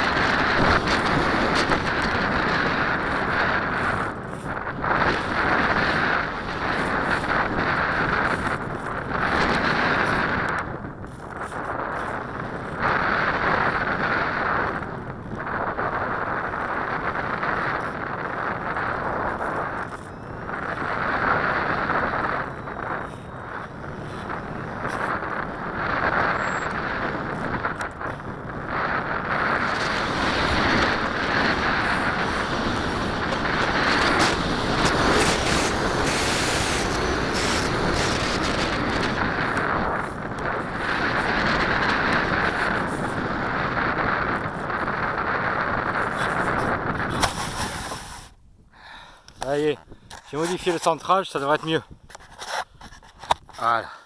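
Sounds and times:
rushing airflow over camera: 0:00.0 - 0:54.0.

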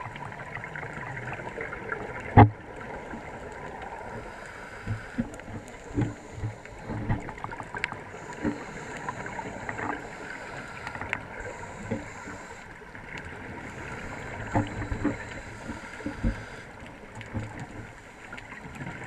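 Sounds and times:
exhaled bubbles gurgling: 0:00.0 - 0:19.0
scuba regulator breathing: 0:03.8 - 0:16.9.

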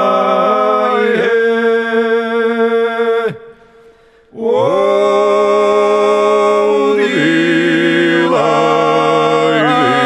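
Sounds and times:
men's choir singing unaccompanied: 0:00.0 - 0:03.1, 0:04.4 - 0:10.0.

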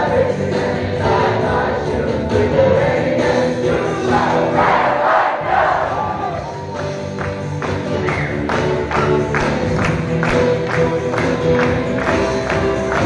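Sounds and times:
crowd singing together: 0:00.0 - 0:06.4
singer on a microphone: 0:00.0 - 0:06.4.

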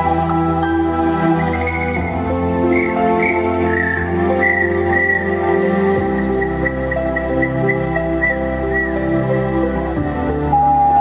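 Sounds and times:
keyboard chords: 0:00.0 - 0:11.0
pan flute melody: 0:00.0 - 0:11.0
steady bass: 0:00.0 - 0:11.0.

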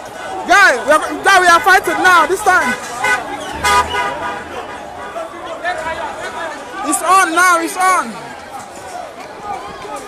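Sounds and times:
crowd hubbub: 0:00.0 - 0:10.0
people shouting: 0:00.5 - 0:08.1
car horn: 0:01.3 - 0:06.0.

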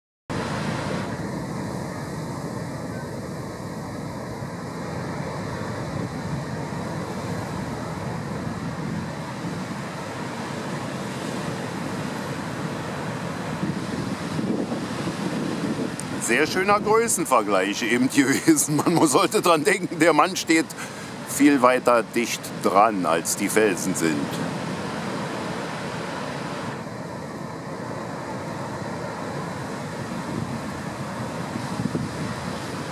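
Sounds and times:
wind on microphone: 0:00.5 - 0:17.2, 0:29.3 - 0:32.9
surf breaking against rocks: 0:04.9 - 0:27.0.

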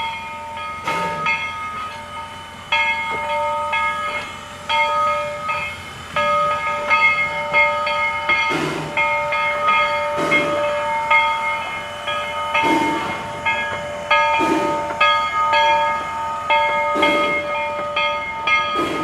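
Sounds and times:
steam train rolling past: 0:00.0 - 0:19.0
locomotive exhaust steam puffs: 0:00.3 - 0:19.0.

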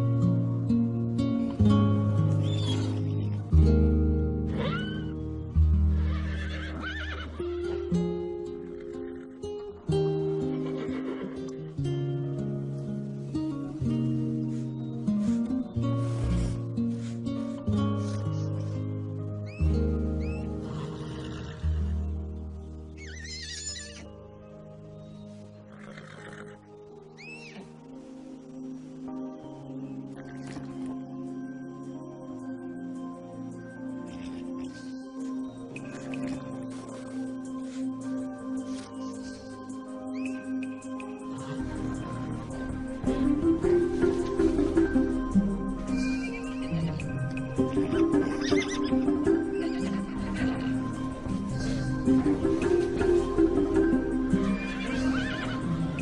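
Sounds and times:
song accompaniment with held chords: 0:00.0 - 0:56.0
foal whinnying: 0:04.5 - 0:05.2, 0:06.0 - 0:07.8, 0:23.0 - 0:24.1, 0:47.9 - 0:50.8, 0:54.4 - 0:55.9.

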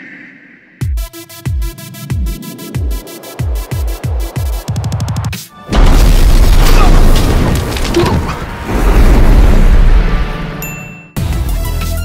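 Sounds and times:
explosion boom with deep rumble: 0:05.7 - 0:10.2.

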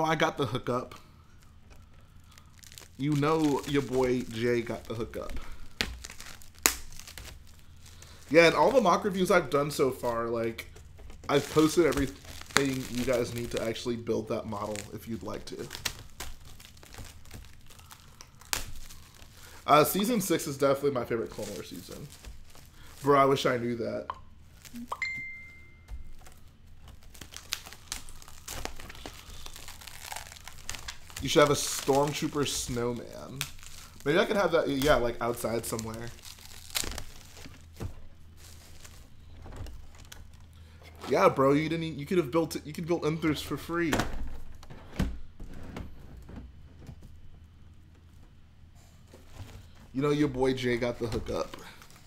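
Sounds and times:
plastic wrapping crinkling: 0:00.0 - 0:52.0
thin high tone: 0:24.8 - 0:26.1.

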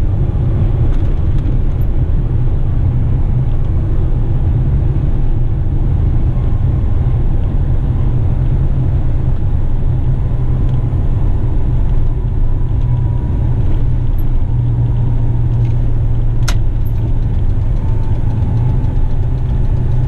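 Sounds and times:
truck diesel engine drone: 0:00.0 - 0:20.0.

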